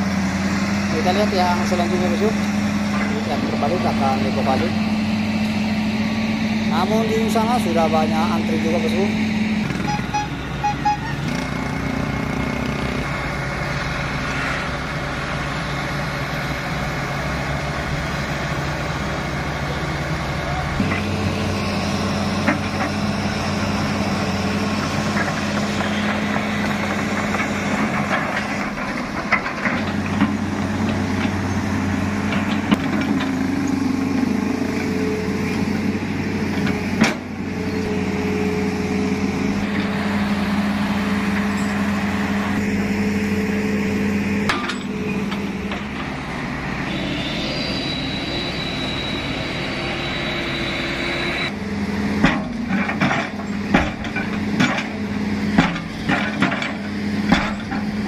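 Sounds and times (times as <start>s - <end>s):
heavy diesel engines running: 0.0s - 58.0s.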